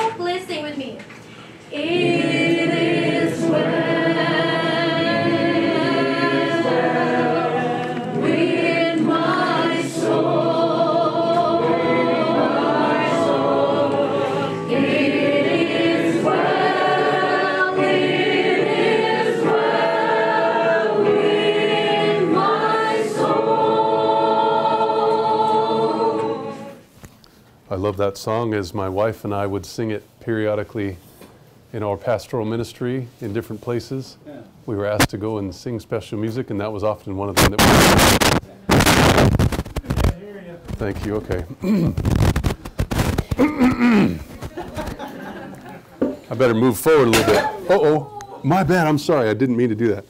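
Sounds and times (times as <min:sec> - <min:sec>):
choir singing: 0:01.7 - 0:26.9.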